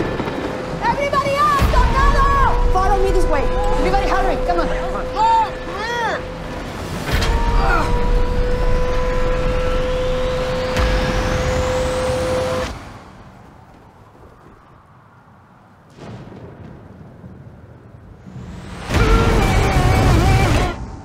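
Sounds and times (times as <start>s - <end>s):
low rumble: 0.0s - 14.9s
heavy wind: 0.0s - 21.0s
low storm ambience: 0.0s - 21.0s
steady held tone: 1.7s - 12.6s
high rising whistle: 2.1s - 12.7s.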